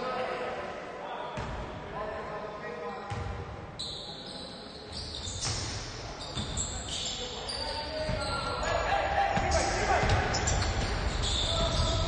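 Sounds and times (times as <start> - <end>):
court noise: 0.0 - 12.0
players' voices: 0.0 - 12.0.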